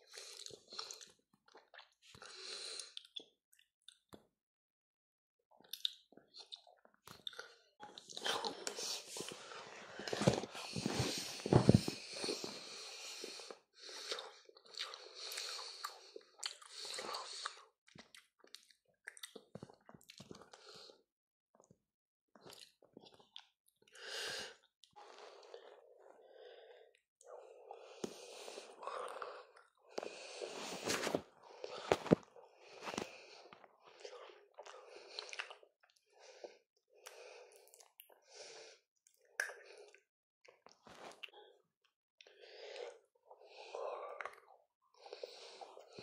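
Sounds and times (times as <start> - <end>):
chewing and mouth sounds: 5.6 - 9.4, 14.1 - 20.7, 22.4 - 23.5, 32.9 - 36.0, 39.0 - 41.6, 44.0 - 46.0.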